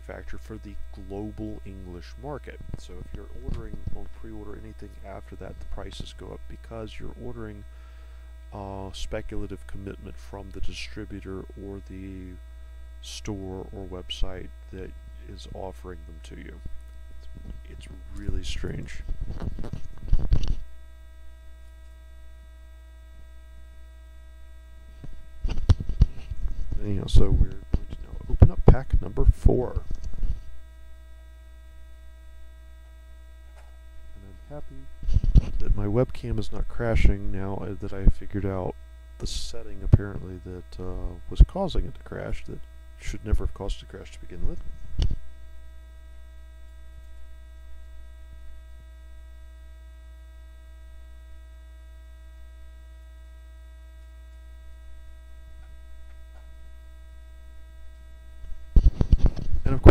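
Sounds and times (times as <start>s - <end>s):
electrical mains hum: 0.0s - 59.9s
person speaking a word: 34.2s - 34.9s.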